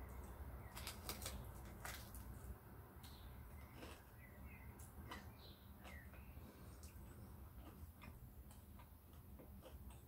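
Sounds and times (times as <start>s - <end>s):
crispy food crunching: 0.0s - 10.0s.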